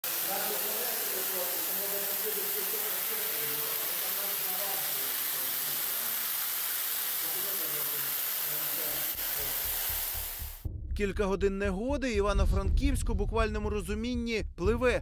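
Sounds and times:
floodwater rushing and pouring: 0.0s - 10.3s.

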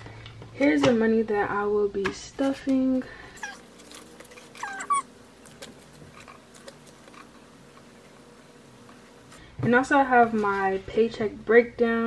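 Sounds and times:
high-pitched animal-like call: 3.4s - 3.6s, 4.6s - 5.1s.

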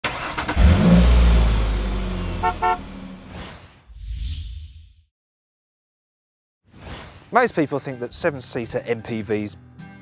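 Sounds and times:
car engine rumble: 0.0s - 3.3s
car horn toots: 2.3s - 3.2s.

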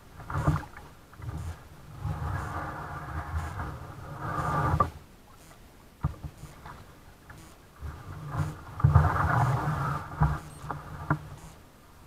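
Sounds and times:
kayak paddle strokes: 0.0s - 11.8s
water against hull: 0.0s - 12.0s.

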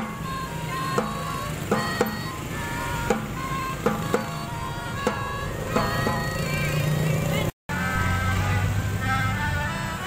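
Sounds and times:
melodicas playing a melody: 0.0s - 10.0s.

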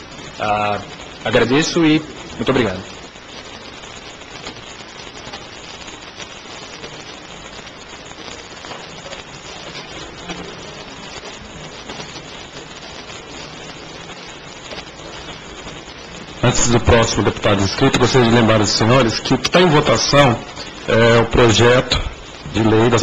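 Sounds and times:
steady background hiss: 0.0s - 23.0s.

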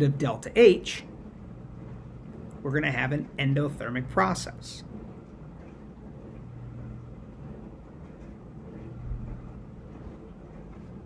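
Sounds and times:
low background hum and rumble: 0.0s - 11.0s.

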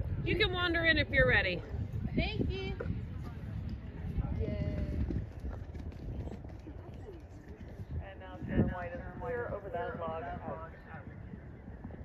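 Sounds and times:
wind rumble on microphone: 0.0s - 12.0s
horse hoofbeats cantering: 3.6s - 9.6s.

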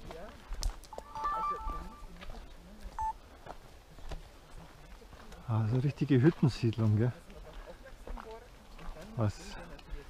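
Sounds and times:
footsteps on gravel: 0.0s - 10.0s
short high tone: 1.0s - 2.1s.

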